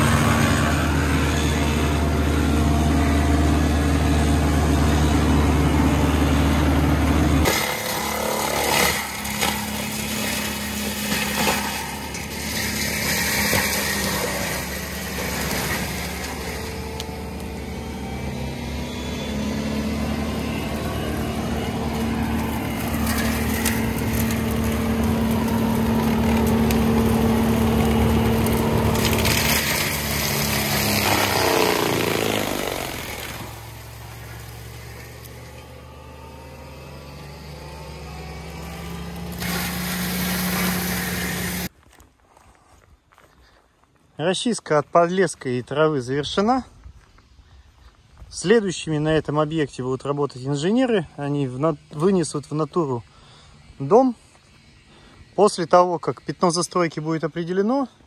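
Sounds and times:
small machine engine running: 0:11.6 - 0:35.1
mulcher drum chewing wood: 0:19.4 - 0:35.7.

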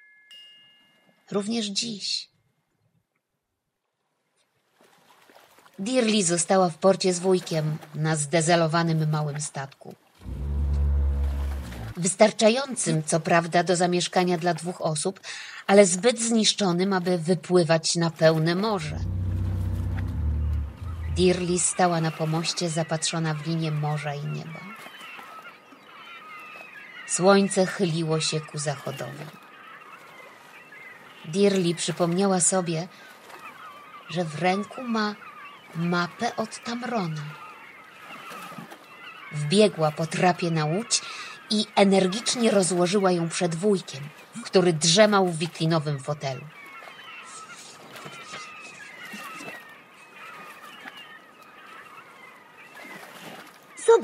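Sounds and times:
flock of birds calling: 0:10.2 - 0:12.1, 0:18.8 - 0:21.9, 0:45.8 - 0:54.0
seagulls calling: 0:10.2 - 0:12.1, 0:18.6 - 0:54.0.

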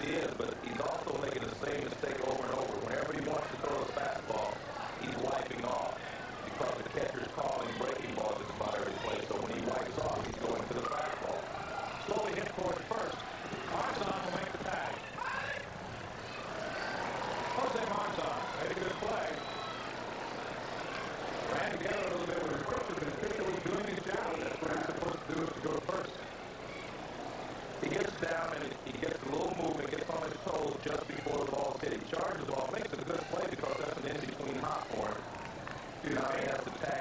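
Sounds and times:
crowd chatter: 0:00.0 - 0:37.0.

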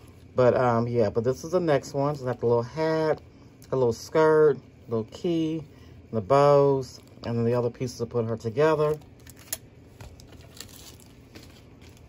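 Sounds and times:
plastic packets crinkling: 0:08.7 - 0:12.0.

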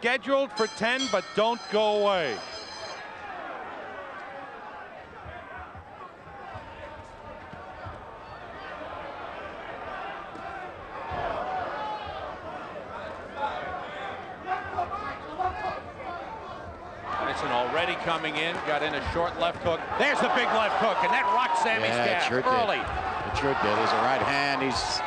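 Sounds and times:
crowd chatter and shouting: 0:00.0 - 0:25.0.

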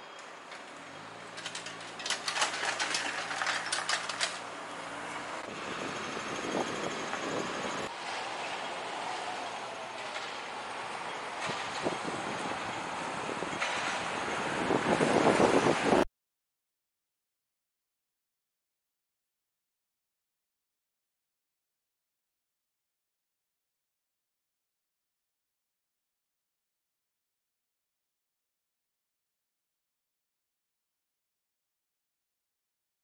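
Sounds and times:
passing traffic: 0:00.0 - 0:16.1
vehicle engine humming: 0:00.0 - 0:16.1
rapid rattling clatter: 0:01.4 - 0:04.4.

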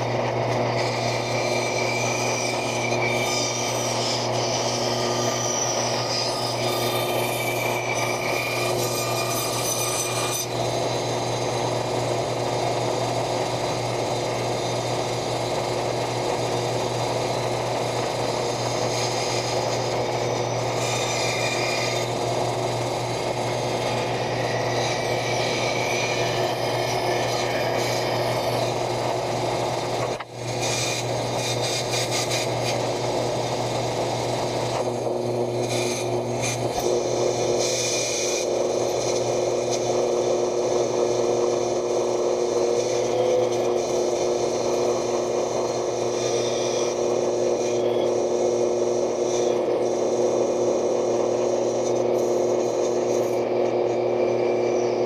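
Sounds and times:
bandsaw cutting wood: 0:00.0 - 0:55.0.

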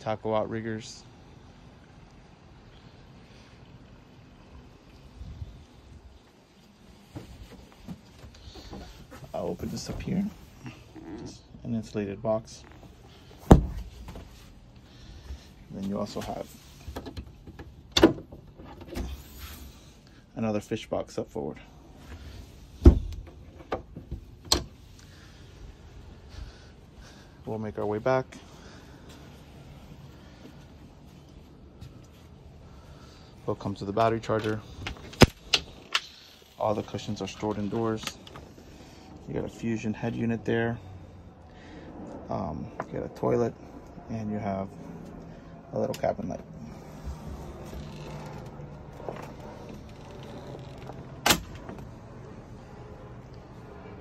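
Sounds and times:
cabin door shutting: 0:49.9 - 0:51.8.

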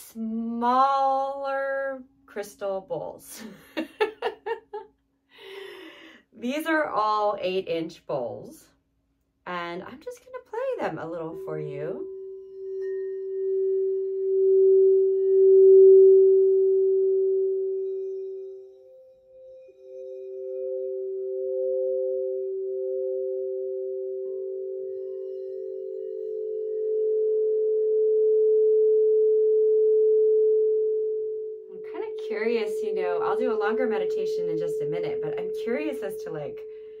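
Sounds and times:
crystal singing bowls ringing: 0:11.4 - 0:28.1.

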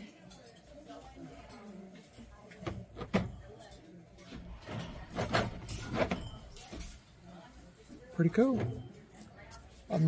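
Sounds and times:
glass bottles clinking: 0:04.4 - 0:07.1, 0:08.2 - 0:10.0.

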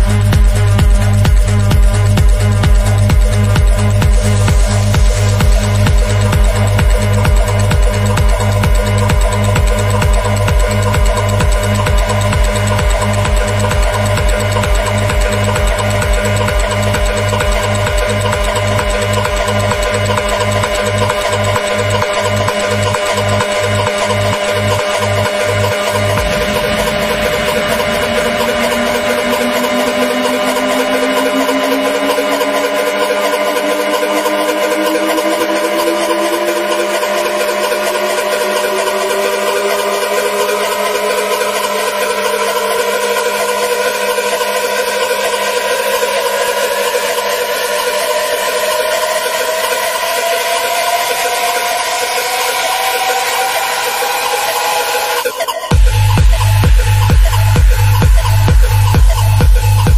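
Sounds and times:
held synth chord and drone: 0:00.0 - 0:59.9
rising synth tone: 0:14.8 - 0:44.1.

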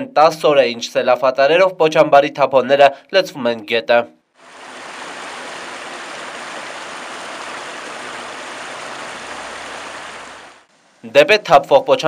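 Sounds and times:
river rushing around boulders: 0:04.4 - 0:10.7.

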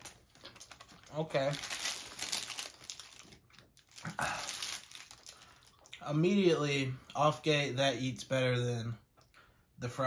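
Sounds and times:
paper wrapper crinkling: 0:00.0 - 0:05.9.

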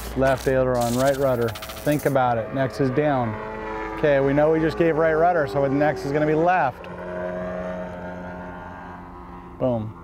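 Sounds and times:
model airplane engine droning: 0:00.0 - 0:10.0.

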